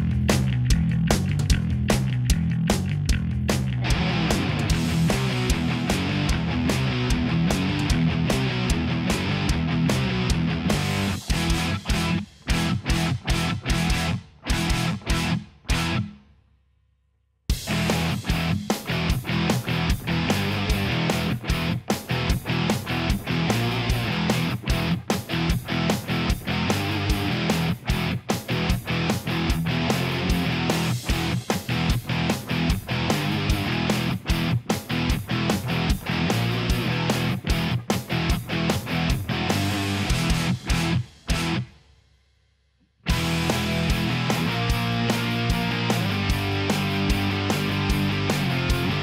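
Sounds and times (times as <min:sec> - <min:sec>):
rock music with electric guitar: 0:00.0 - 0:16.2, 0:17.5 - 0:41.8, 0:43.0 - 0:49.0.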